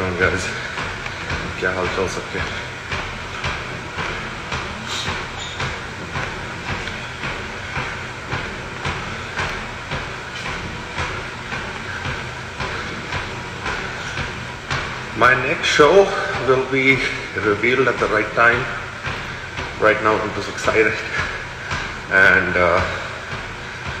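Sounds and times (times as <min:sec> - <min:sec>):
rhythmic thumping: 0:00.0 - 0:24.0.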